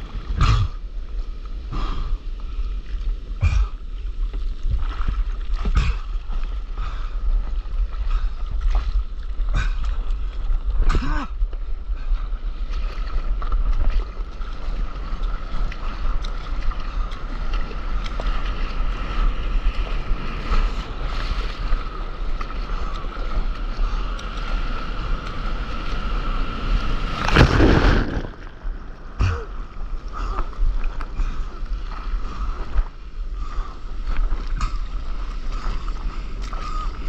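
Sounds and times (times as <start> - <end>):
ocean surf rushing: 23.9 - 30.1
loud water splash: 26.6 - 29.6.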